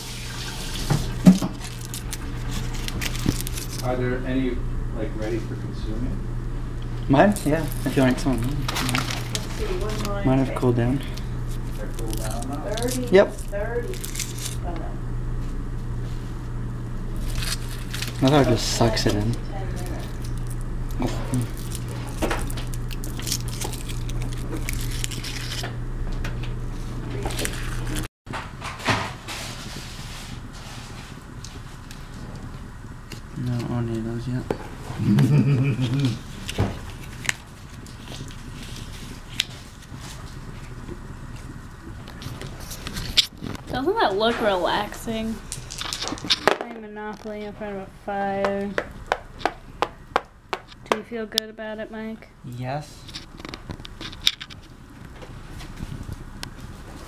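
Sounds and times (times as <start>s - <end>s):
wood fire crackling: 0.0s - 4.4s, 6.7s - 14.8s, 15.6s - 28.1s, 29.8s - 57.0s
steady low hum: 0.0s - 57.0s
plastic bag crinkling: 0.6s - 3.9s, 7.3s - 14.6s, 17.2s - 25.6s.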